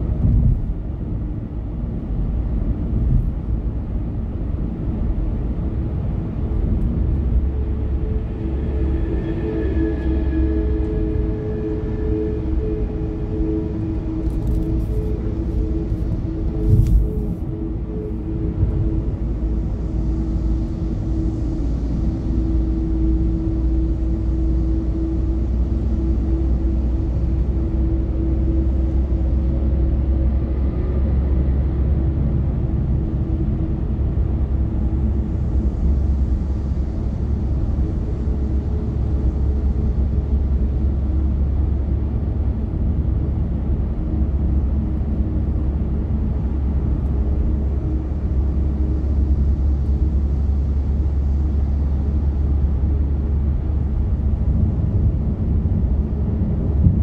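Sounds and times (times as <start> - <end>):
car road and engine drone: 0.0 - 57.0
faint steady hum: 0.0 - 57.0.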